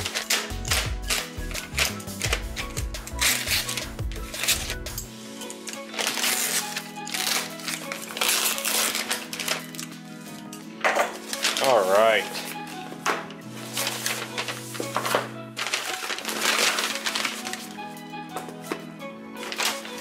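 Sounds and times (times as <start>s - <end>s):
plastic envelope tearing and crinkling: 0.0s - 4.8s, 5.5s - 10.2s, 11.1s - 12.9s, 13.6s - 17.8s, 19.4s - 20.0s
background music: 0.0s - 20.0s.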